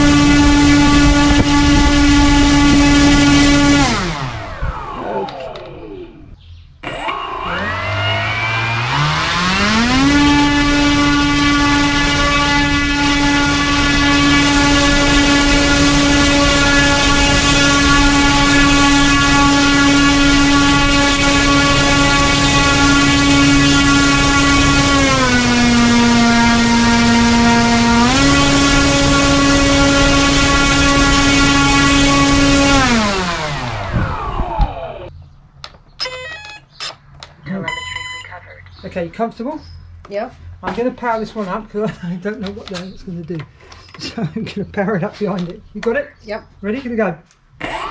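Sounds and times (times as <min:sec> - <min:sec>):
electric motor propeller whine: 0:00.0 - 0:35.1, 0:47.6 - 0:47.9.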